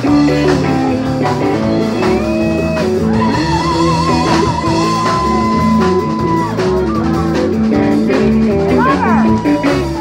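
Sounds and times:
live blues band playing: 0.0s - 10.0s.

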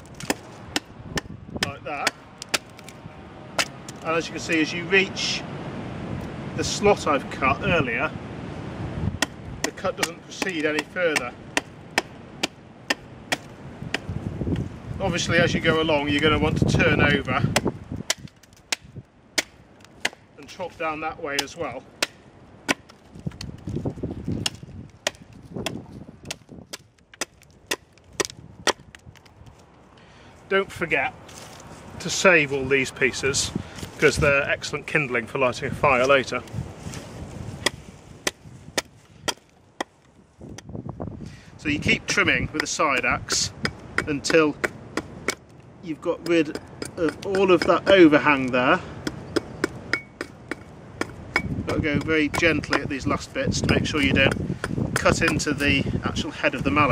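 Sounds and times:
axe chopping wood: 0.1s - 3.0s, 3.6s - 4.0s, 9.2s - 14.6s, 16.8s - 23.5s, 24.2s - 29.0s, 37.6s - 40.7s, 42.2s - 45.5s, 46.1s - 55.8s.

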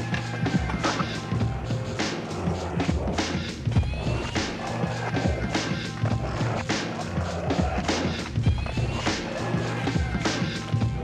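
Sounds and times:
drum beat over deep bass: 0.0s - 11.0s.

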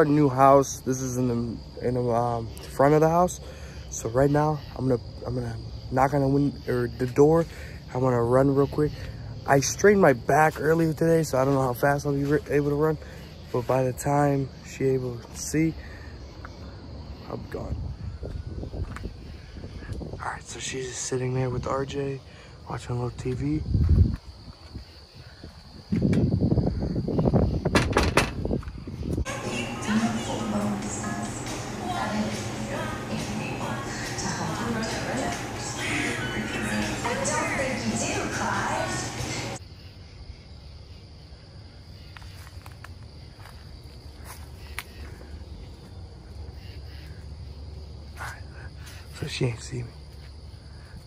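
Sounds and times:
crickets chirping: 0.0s - 51.0s
tv playing music: 29.3s - 39.6s
footsteps crunching on gravel: 42.1s - 46.0s.

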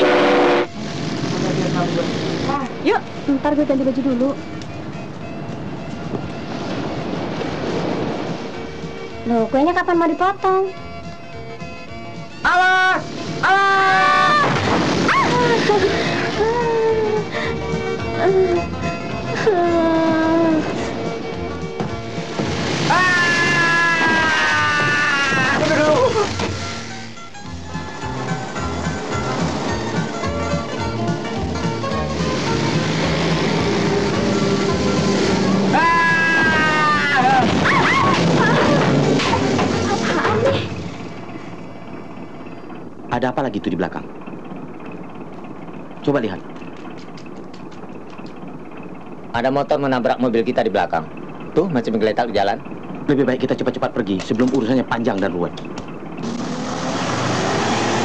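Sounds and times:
car engine and road noise: 0.0s - 10.1s, 10.7s - 13.6s, 14.6s - 25.0s, 25.7s - 58.0s
film music with sliding notes: 26.5s - 36.0s.

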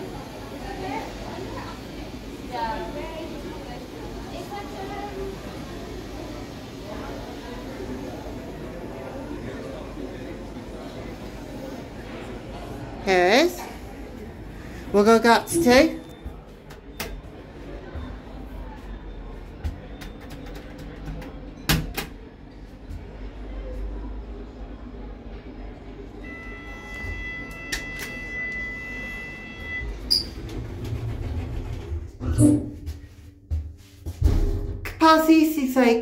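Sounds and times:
electronic beep: 26.3s - 30.4s.

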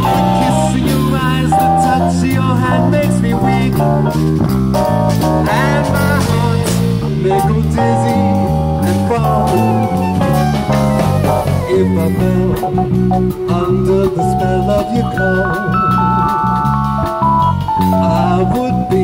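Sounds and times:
melody line: 0.0s - 4.2s, 4.8s - 19.0s
drum kit and cymbals: 0.0s - 19.0s
walking electric bass: 0.0s - 19.0s.

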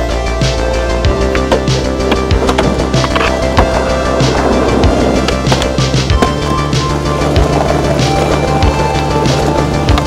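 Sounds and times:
skateboard wheels rolling on concrete: 0.0s - 10.0s
skateboard clacking: 1.1s - 10.0s.

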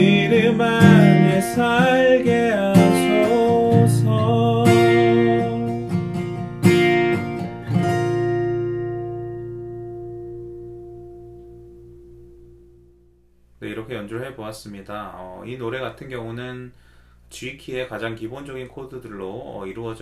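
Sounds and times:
acoustic guitar chords ringing: 0.0s - 13.5s.

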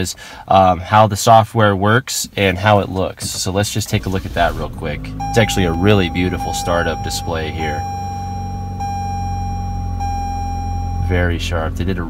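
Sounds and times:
low steady hum: 1.8s - 12.0s
electronic startup tone: 5.2s - 11.0s.

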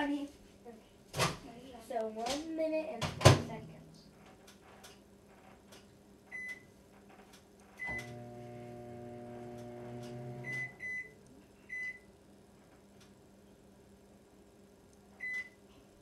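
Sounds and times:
microwave keypad beeping: 7.8s - 8.4s, 10.0s - 12.0s
microwave oven humming: 7.8s - 16.0s.

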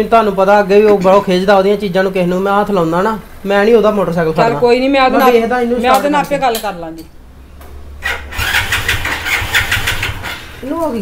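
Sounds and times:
motorcycle engine starting and running: 7.6s - 11.0s.

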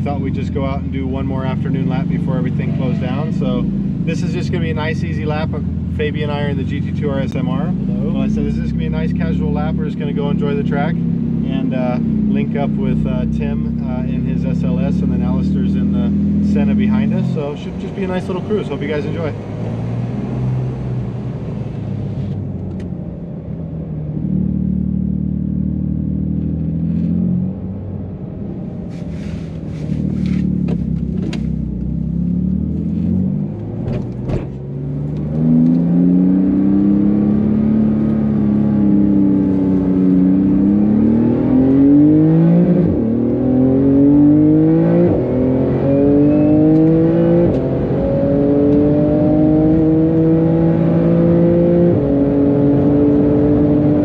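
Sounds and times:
car engine accelerating: 0.0s - 54.0s.

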